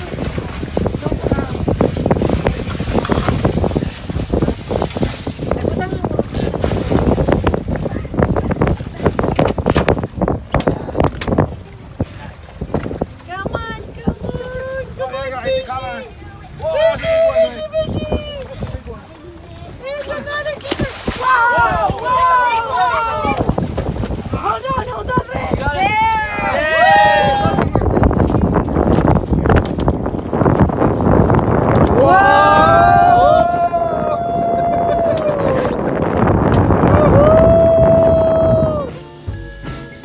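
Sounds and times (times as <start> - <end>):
wind buffeting microphone: 0.0 - 40.0
voices calling out in long cries: 21.2 - 23.4, 31.9 - 35.8, 37.0 - 38.9.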